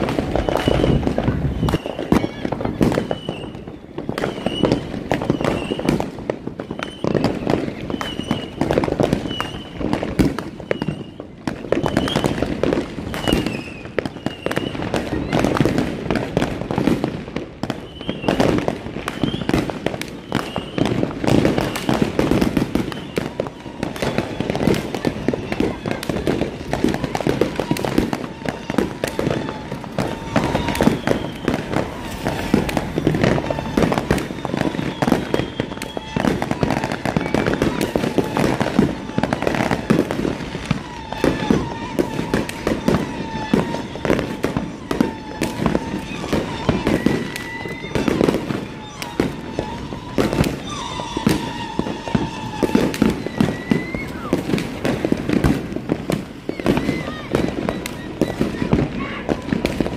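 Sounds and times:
fireworks popping and banging: 0.0s - 59.9s.

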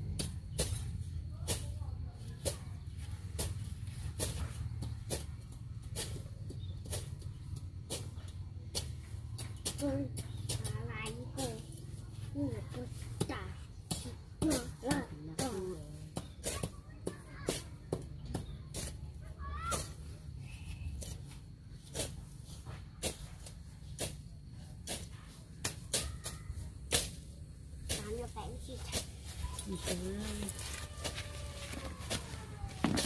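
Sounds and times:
hand tool chopping weeds: 0.0s - 11.8s, 12.7s - 20.2s, 21.0s - 33.0s
voices: 0.0s - 33.0s.

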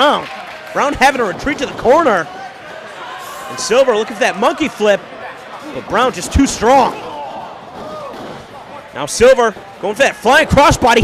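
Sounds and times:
crowd murmur: 0.4s - 10.3s.

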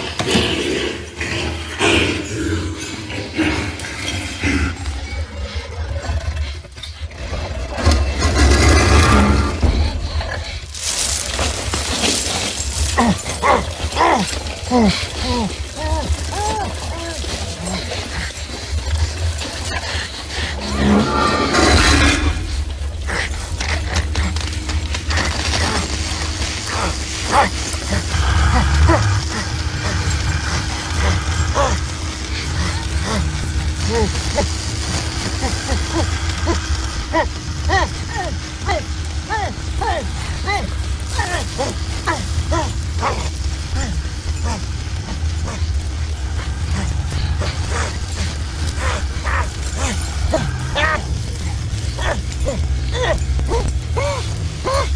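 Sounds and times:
deep continuous rumble: 0.0s - 54.9s
haze of higher noise: 19.3s - 54.9s.

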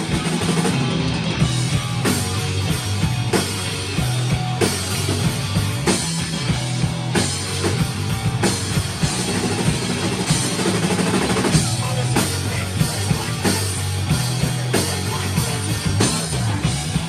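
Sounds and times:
drum kit: 0.0s - 17.0s
electric guitar: 0.0s - 17.0s.

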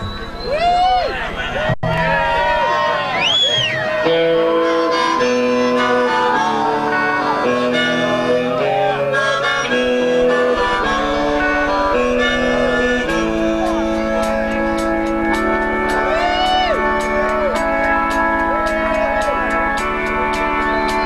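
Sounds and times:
electric guitar: 1.9s - 21.0s
amplified harmonica chords: 3.6s - 21.0s.

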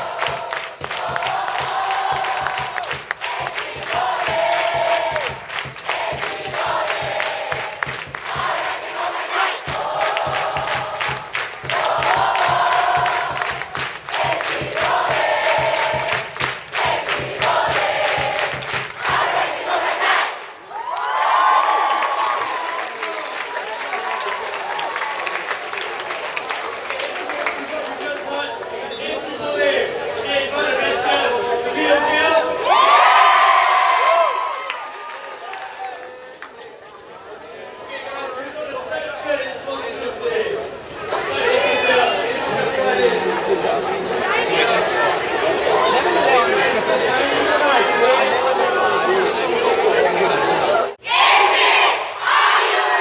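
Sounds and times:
rhythmic clapping: 0.0s - 20.3s
students chanting in unison: 0.0s - 20.6s, 44.0s - 53.0s
crowd voices: 0.0s - 53.0s
loud group shout: 51.0s - 53.0s.

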